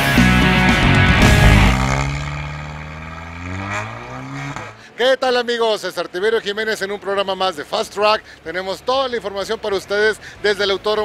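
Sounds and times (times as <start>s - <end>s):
rock music: 0.0s - 3.6s
race car engine accelerating: 0.2s - 4.8s.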